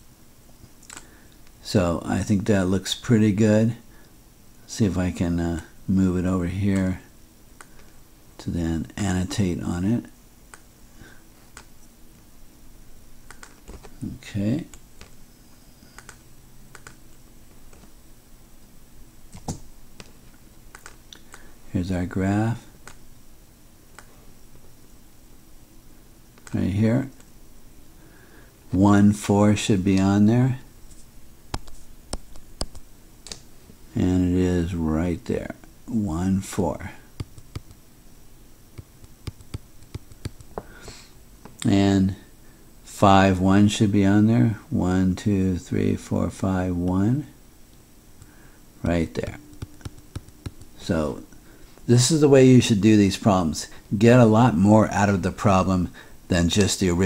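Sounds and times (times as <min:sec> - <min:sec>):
faint room noise: 0:00.0 - 0:57.0
mouse and keyboard clicks: 0:13.3 - 0:13.9, 0:15.9 - 0:17.0, 0:19.3 - 0:20.1, 0:20.7 - 0:21.4
stylus tapping on pen tablet: 0:37.2 - 0:37.8, 0:38.8 - 0:40.7, 0:49.4 - 0:50.8.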